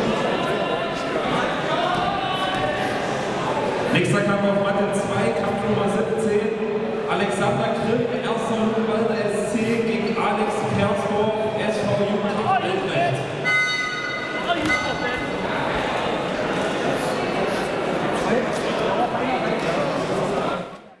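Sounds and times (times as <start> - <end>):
crowd chatter echoing: 0.0 - 21.0
brief high tone: 13.4 - 15.2.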